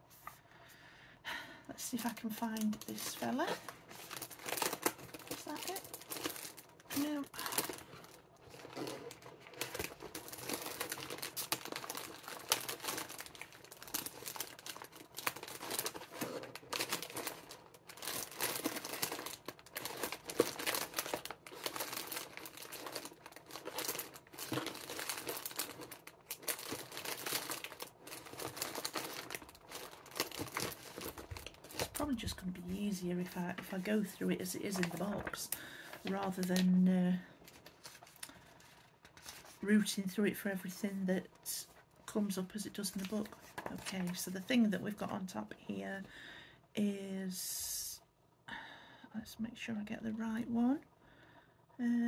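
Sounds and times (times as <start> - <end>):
packaging crinkling: 2.0 - 39.6
booklet pages turning: 37.4 - 39.6.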